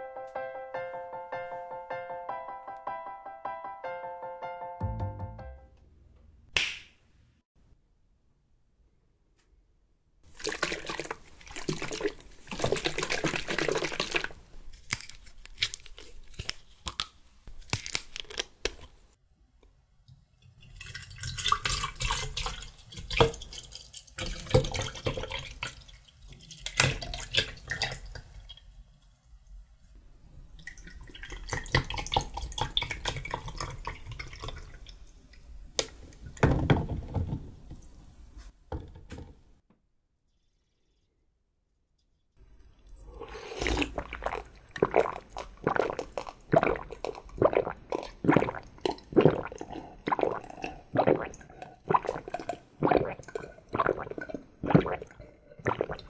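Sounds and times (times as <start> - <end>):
juice pouring over ice: 10.3 - 14.4, 20.6 - 28.2, 42.9 - 56.0.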